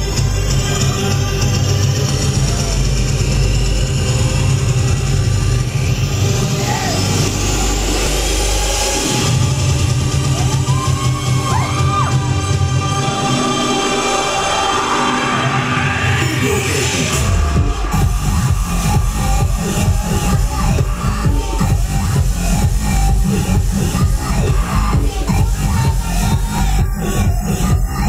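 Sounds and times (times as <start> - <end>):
heavy bass beat: 0.0 - 28.0
loud electronic dance music: 0.0 - 28.0
rising synth sweep: 1.4 - 25.7.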